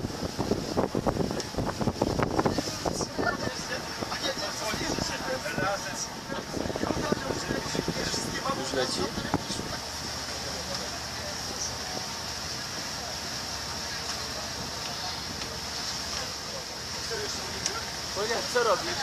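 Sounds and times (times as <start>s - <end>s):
boat engine hum: 0.0s - 19.0s
wind and water rushing: 0.0s - 19.0s
people's voices: 2.3s - 19.0s.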